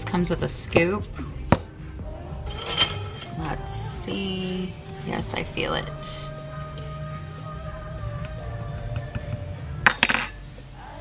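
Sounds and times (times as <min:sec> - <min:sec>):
soft background music: 0:00.0 - 0:11.0
metal utensil scraping in plastic tub: 0:02.4 - 0:03.8.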